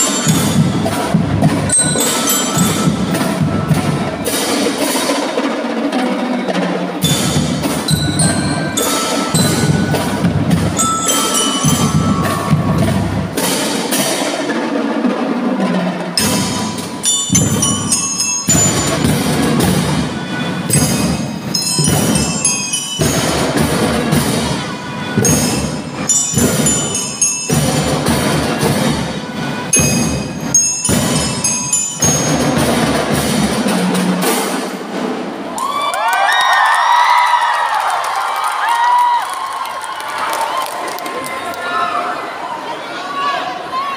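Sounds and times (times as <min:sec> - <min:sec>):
marching band playing: 0:00.0 - 0:35.6
audience cheering and shouting: 0:11.0 - 0:13.0, 0:35.5 - 0:43.9.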